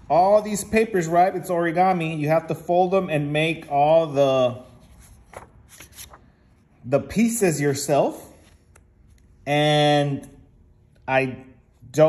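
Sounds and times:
paper rustling: 4.5s - 6.6s.

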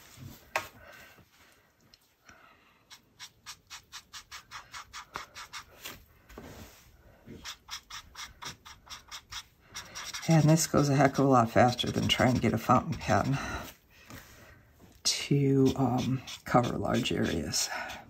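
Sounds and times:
brush pen scratching on paper: 2.9s - 6.0s, 7.3s - 13.7s, 15.6s - 18.0s.

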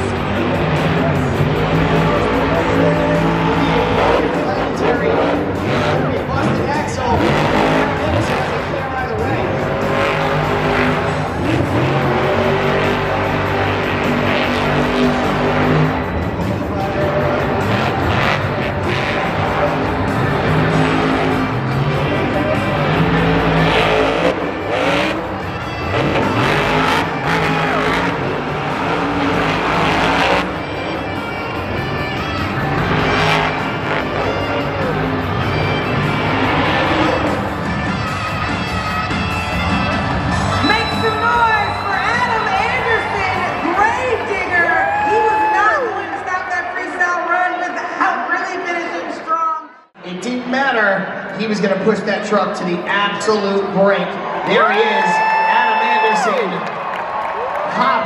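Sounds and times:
monster truck engine revving: 0.0s - 47.0s
tires skidding: 0.0s - 47.0s
stadium music: 0.0s - 58.0s.

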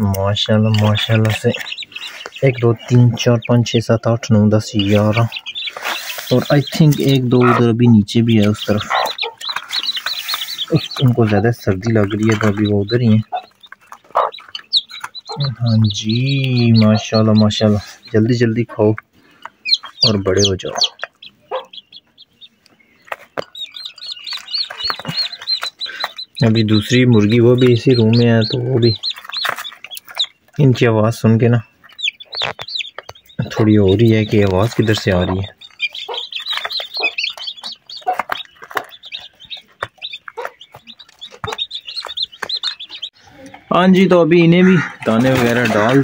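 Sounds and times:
chicks peeping: 0.0s - 46.0s
hen clucking: 0.0s - 46.0s.

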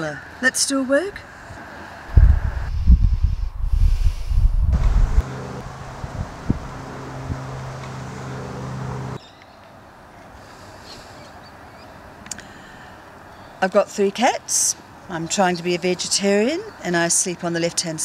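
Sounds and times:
faint outdoor background: 0.0s - 18.0s
wind buffeting microphone: 2.0s - 7.5s
steady low hum: 2.0s - 9.2s.

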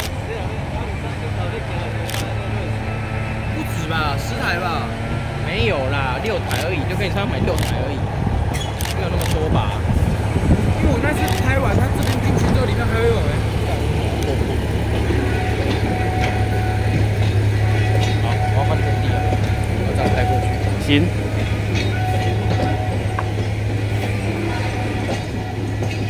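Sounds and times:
diesel locomotive engine hum: 0.0s - 26.0s.

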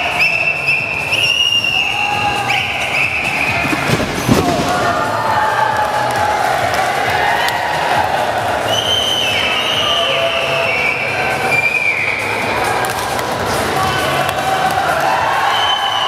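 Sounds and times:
arena crowd noise: 0.0s - 16.0s
body thudding on ring mat: 3.5s - 5.1s.

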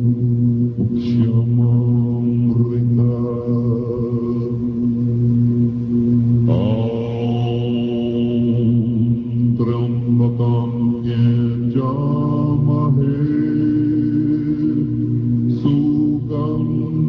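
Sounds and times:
monks chanting in deep voices: 0.0s - 17.0s.

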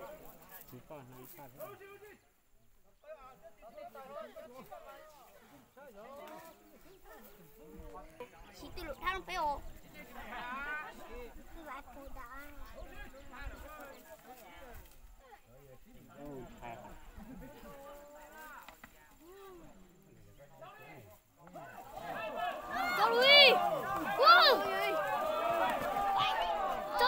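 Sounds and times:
people talking: 3.1s - 27.0s
excited overlapping voices: 3.6s - 27.0s.

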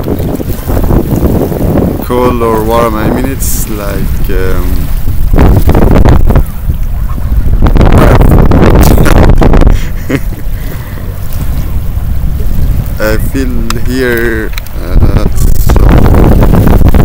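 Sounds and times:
wind gusting across microphone: 0.0s - 17.0s.

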